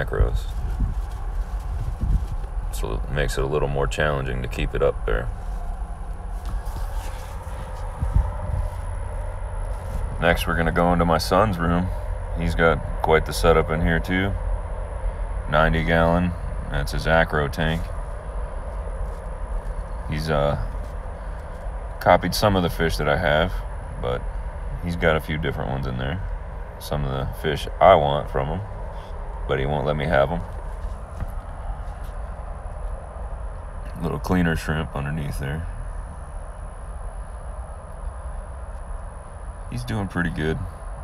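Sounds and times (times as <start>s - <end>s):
aquarium pumps humming: 0.0s - 41.0s
faint high whine: 0.0s - 41.0s.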